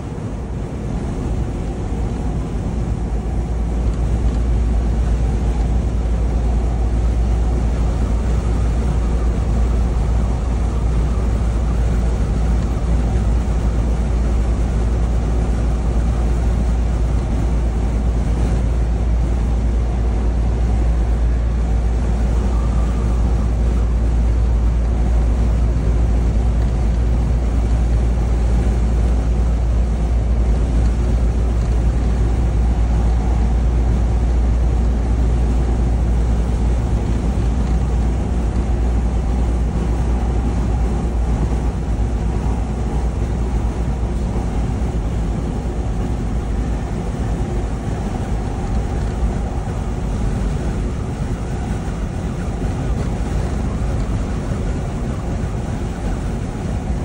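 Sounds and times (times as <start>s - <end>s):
road noise: 0.0s - 57.0s
truck engine rumble: 0.0s - 57.0s.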